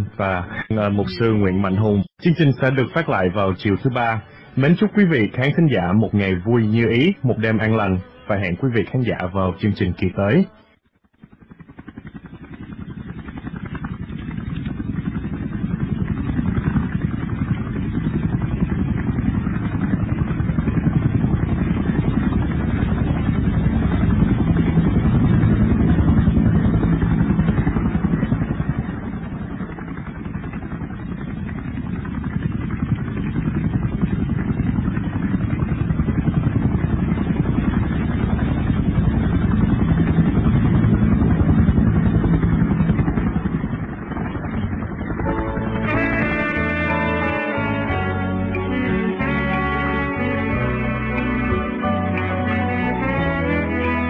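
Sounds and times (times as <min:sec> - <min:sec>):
low engine-like rumble: 0:11.2 - 0:54.0.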